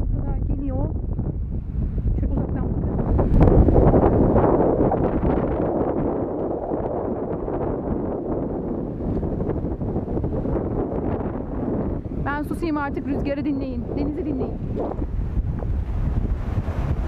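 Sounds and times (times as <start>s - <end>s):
wind on microphone: 0.0s - 17.0s.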